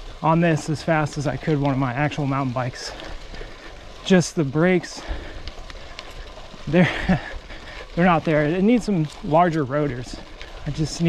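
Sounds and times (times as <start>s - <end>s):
bike tyres rolling on dirt trail: 0.0s - 11.0s.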